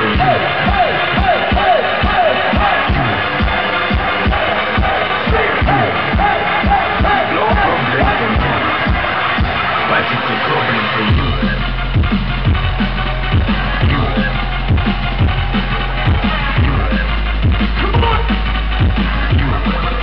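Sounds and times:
crowd: 0.0 - 20.0
electronic dance music: 0.0 - 20.0
deep bass note: 11.1 - 20.0.

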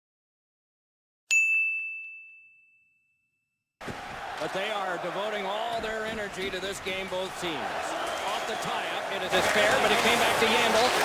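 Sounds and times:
bright metallic ding: 1.3 - 3.3.

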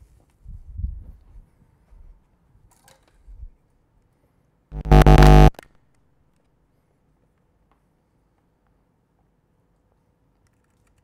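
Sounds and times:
distorted synthesizer buzz: 4.8 - 5.5.

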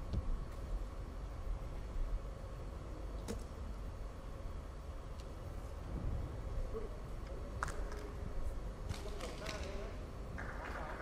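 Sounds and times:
low hall hum: 0.0 - 11.0.

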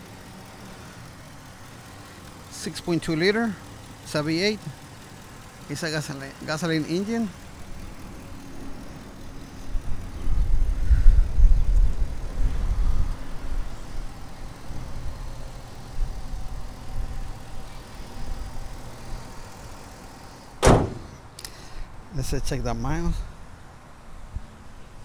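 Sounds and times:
truck hood slamming shut: 20.6 - 21.2.

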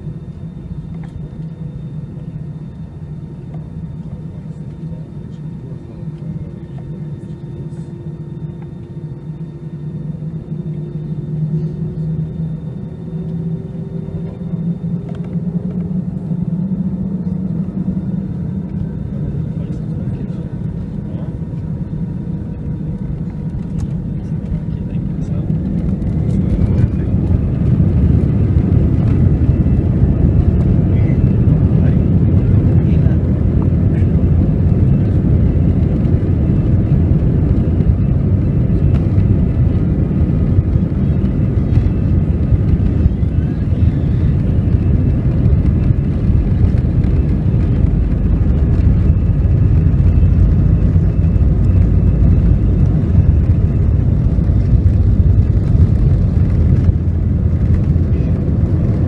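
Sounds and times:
jet engines humming at idle: 0.0 - 59.0
jet engines spooling up roaring: 0.0 - 59.0.

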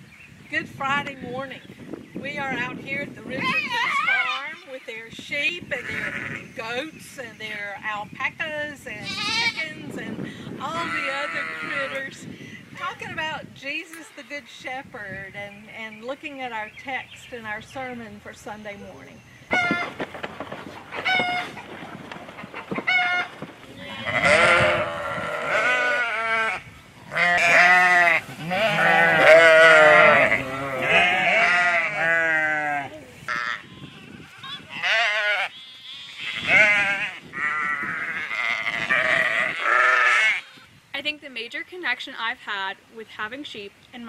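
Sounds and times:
sheep and goats bleating: 5.7 - 6.6, 9.0 - 10.0, 10.6 - 12.1, 23.0 - 40.7.

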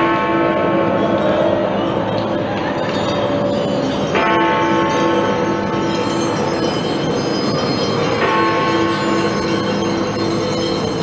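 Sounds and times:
large bell ringing: 0.0 - 11.0.

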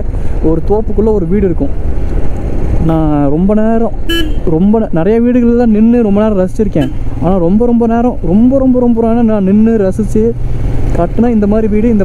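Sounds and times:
man talking: 0.0 - 1.8, 2.8 - 12.0
motorcycle engine rumble: 0.0 - 12.0
wind: 0.0 - 12.0.

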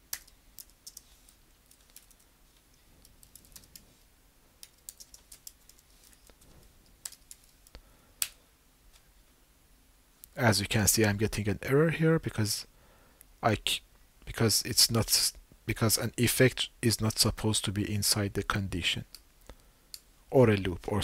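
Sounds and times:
keyboard keystrokes: 4.6 - 5.8.

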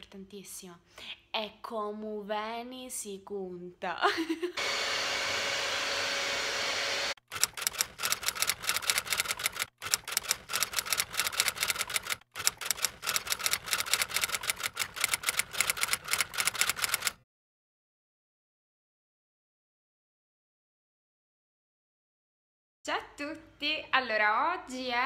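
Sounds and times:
rapid clattering clicks: 7.3 - 17.2.

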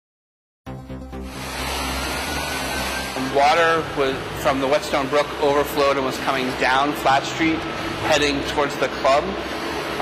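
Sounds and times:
music playing: 0.7 - 7.6.

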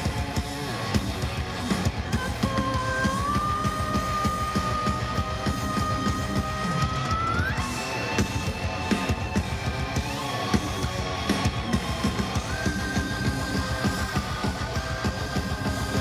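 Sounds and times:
drum kit: 0.0 - 16.0
guitar: 0.0 - 16.0
keyboards: 0.0 - 16.0.

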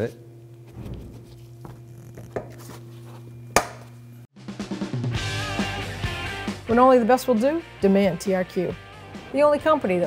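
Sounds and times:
music with drum beat: 4.4 - 9.8.

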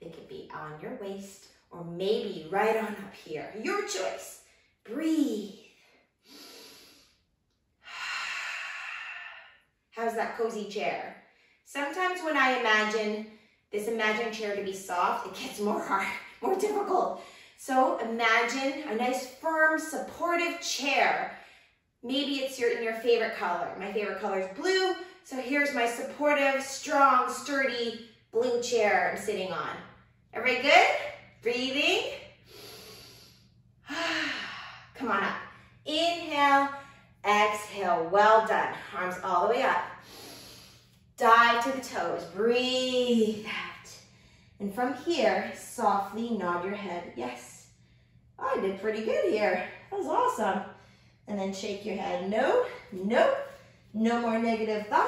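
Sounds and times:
woman breathing: 5.6 - 7.2, 7.8 - 9.8, 32.3 - 35.9, 39.9 - 41.1, 44.0 - 44.6, 50.7 - 51.3.

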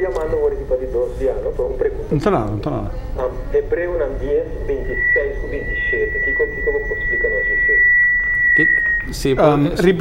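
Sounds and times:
high-pitched electronic tone: 4.1 - 10.0.

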